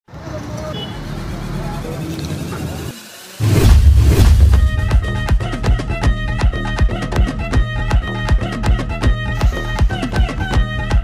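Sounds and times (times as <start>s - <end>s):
motorbikes passing: 0.1s - 5.7s
street traffic noise: 0.1s - 6.4s.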